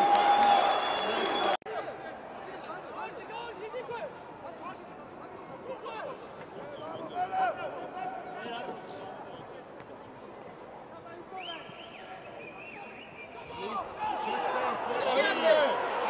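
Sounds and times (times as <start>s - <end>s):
players shouting and calling: 0.0s - 9.7s, 10.9s - 16.0s.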